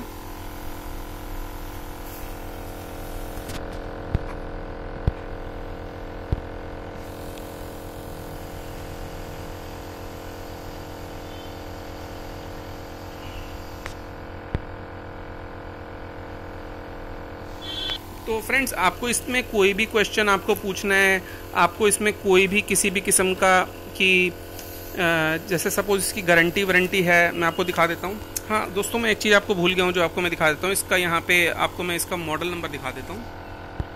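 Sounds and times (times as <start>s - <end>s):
electric motor hum: 0.0s - 33.9s.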